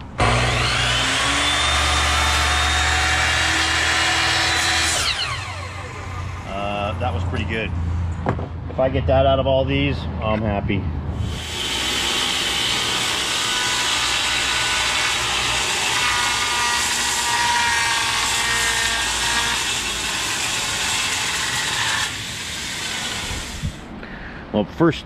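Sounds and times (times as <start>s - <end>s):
power saw cutting board: 0.0s - 6.6s, 11.2s - 23.8s.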